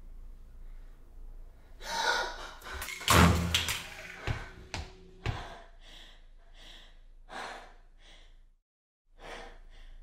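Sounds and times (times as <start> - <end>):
woman breathing heavily: 5.2 - 10.0.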